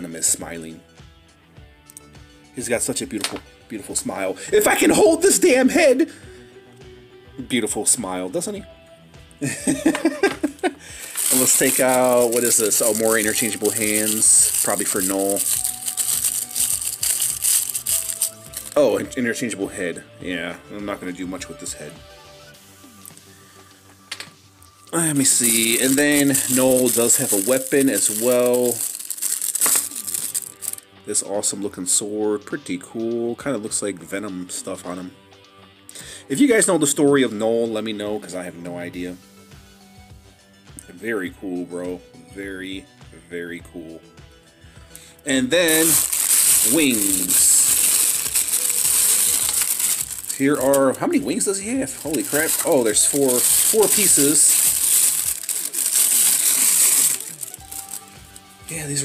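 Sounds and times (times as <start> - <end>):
tissue paper crinkling: 10.8 - 19.0, 24.9 - 30.8, 45.6 - 58.5.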